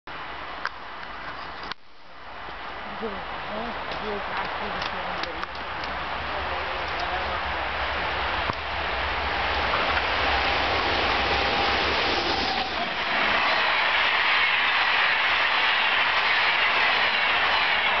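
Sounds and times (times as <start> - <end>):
wheels rushing on rail: 0.1 - 18.0
train passing at speed: 2.5 - 18.0.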